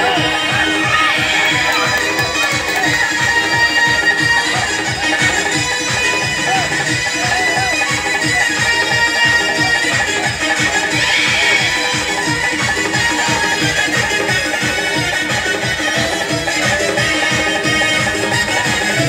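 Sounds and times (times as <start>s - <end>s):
wavering held melody: 0.0s - 19.0s.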